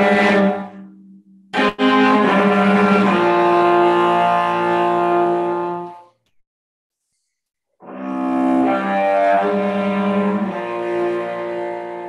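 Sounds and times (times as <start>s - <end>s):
cello bowed notes: 0.0s - 6.0s, 7.9s - 12.0s.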